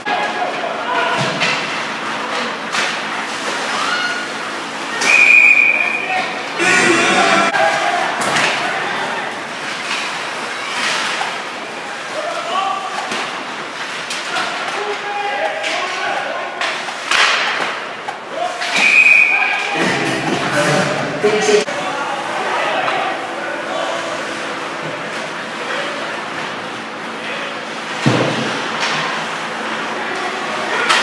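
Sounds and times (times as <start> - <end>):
referee's whistle blowing: 5.0 - 6.0, 18.8 - 19.6
players shouting: 6.5 - 9.4.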